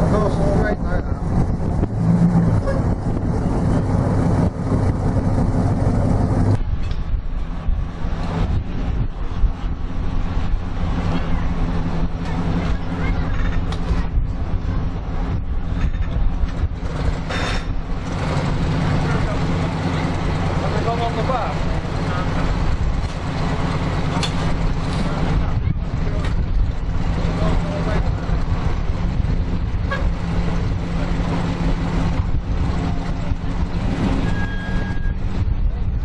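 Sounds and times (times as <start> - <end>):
car engine low rumble: 0.0 - 36.0.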